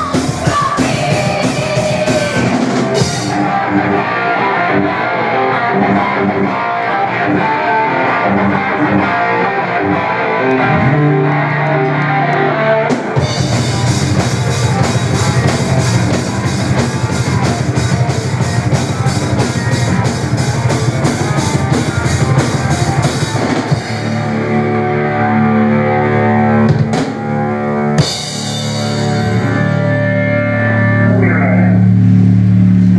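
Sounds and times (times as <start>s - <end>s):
rapid drumming: 0.0s - 3.6s, 12.9s - 24.4s, 28.0s - 29.5s
bass guitar: 0.0s - 32.9s
distorted electric guitar: 0.0s - 32.9s.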